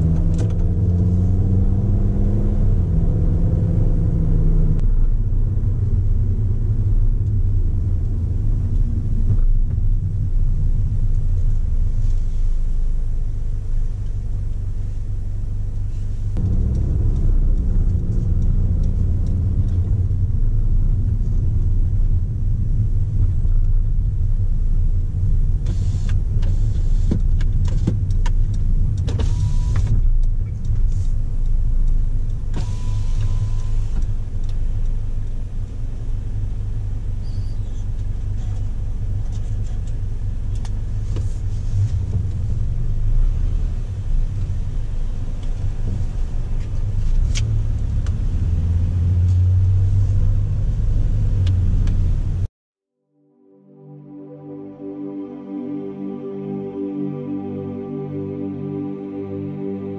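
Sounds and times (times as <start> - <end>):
car engine and tyre rumble: 0.0 - 52.5.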